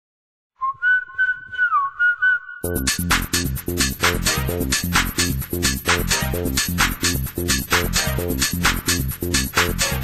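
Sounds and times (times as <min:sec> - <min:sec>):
whistled melody: 0:00.6 - 0:03.0.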